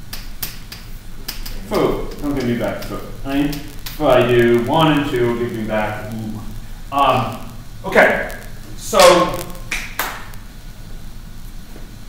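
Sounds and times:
faint hiss: 0.0 - 12.0
steady low hum: 0.0 - 12.0
sharp click: 0.1 - 4.0.

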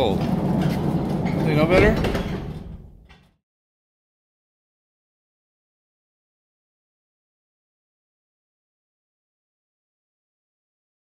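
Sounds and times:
low rumbling: 0.0 - 3.4.

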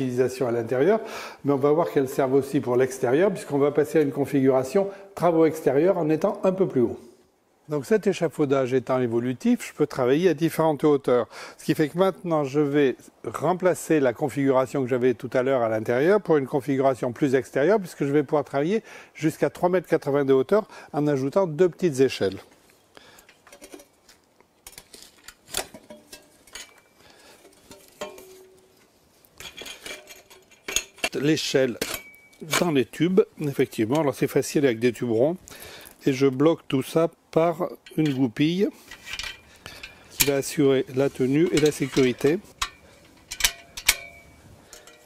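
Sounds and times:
metal ladder sections clinking: 24.7 - 34.2, 37.6 - 45.0
short metallic rings: 31.8 - 32.6, 41.4 - 45.0.

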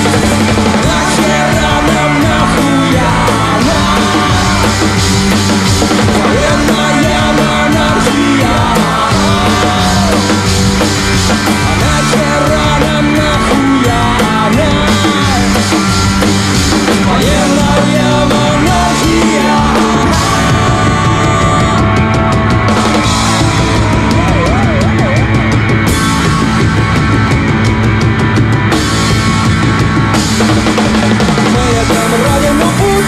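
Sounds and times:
bass guitar: 0.0 - 33.0
distorted electric guitar: 0.0 - 33.0
drum kit: 0.0 - 33.0.

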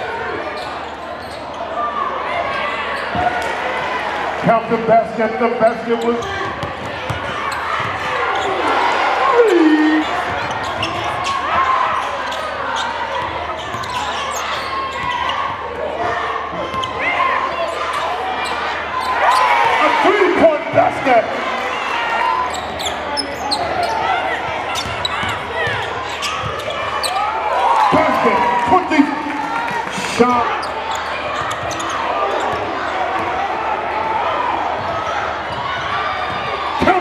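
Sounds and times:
crowd chatter and shouts: 0.0 - 37.0.

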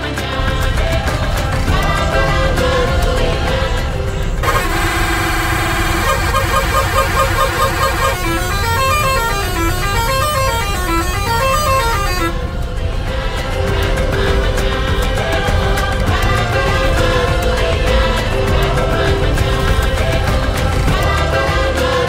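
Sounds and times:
road and engine rumble: 0.0 - 22.0
bus musical horn playing a tune: 4.4 - 12.8.

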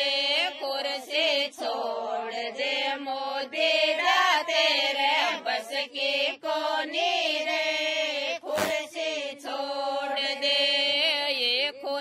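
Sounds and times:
women singing a chant: 0.0 - 12.0.

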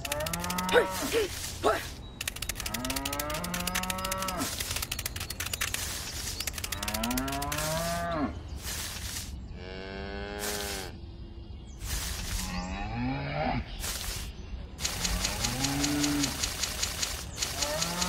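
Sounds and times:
rapid fine clicking: 0.0 - 8.0, 13.8 - 18.0
cattle mooing: 0.1 - 1.2, 15.2 - 16.4.

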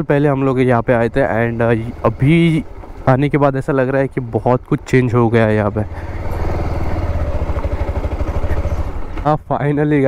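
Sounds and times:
motorcycle engine running: 0.2 - 9.8.

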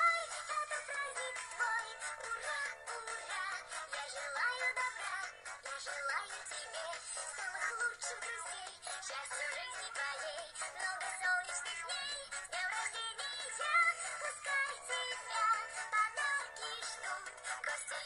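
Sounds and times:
children's birthday song: 0.0 - 18.0.

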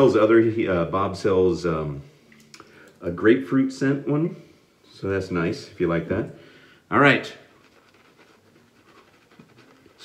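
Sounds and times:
shaving brush swishing lather: 7.2 - 10.0.

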